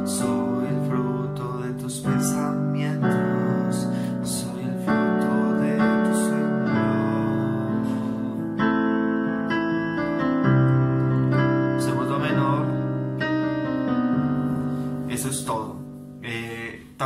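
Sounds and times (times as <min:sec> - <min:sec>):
electronic piano playing ballad chords: 0:00.0 - 0:17.0.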